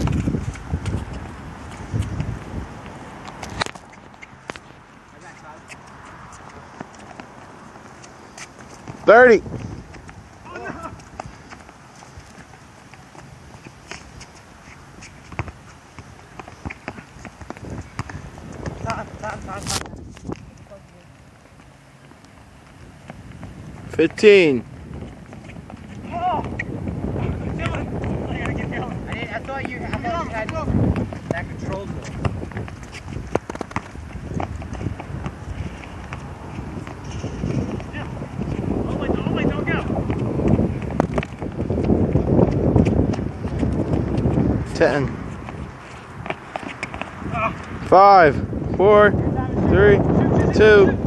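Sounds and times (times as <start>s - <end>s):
ball kicked and bouncing: 0.0s - 4.7s, 5.7s - 10.2s, 11.0s - 20.5s, 24.9s - 47.8s
wind rumble on microphone: 0.0s - 4.8s, 8.9s - 12.4s, 16.9s - 20.8s, 22.7s - 51.0s
sneakers scuffing on hard court: 0.0s - 20.5s, 24.9s - 47.2s
short shouts: 26.0s - 26.6s, 47.3s - 47.6s.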